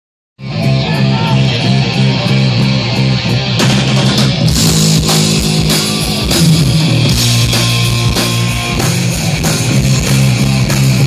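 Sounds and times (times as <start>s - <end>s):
bass guitar riff: 0.4s - 11.0s
distorted electric guitars: 0.4s - 11.0s
drums: 0.4s - 11.0s.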